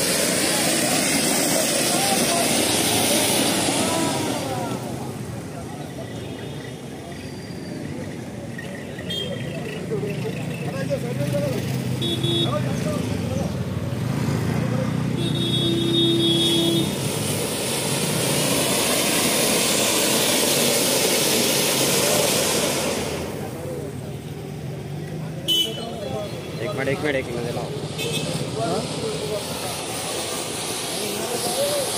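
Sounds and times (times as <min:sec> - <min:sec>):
fireworks hissing: 0:00.0 - 0:11.0, 0:11.6 - 0:31.9
crowd chatter: 0:00.0 - 0:31.9.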